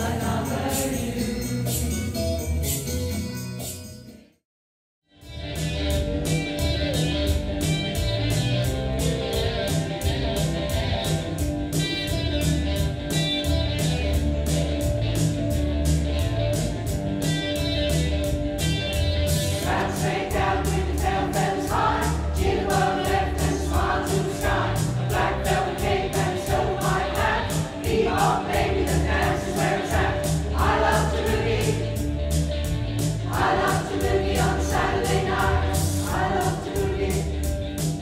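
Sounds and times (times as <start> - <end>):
mixed choir singing: 0.0 - 1.9, 19.6 - 32.1, 33.2 - 37.4
rhythmic accompaniment with bass: 0.0 - 4.1, 5.2 - 38.0.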